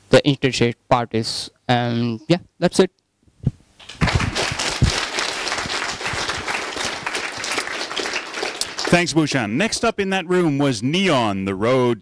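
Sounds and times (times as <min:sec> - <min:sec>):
crowd clapping: 0:03.8 - 0:09.6.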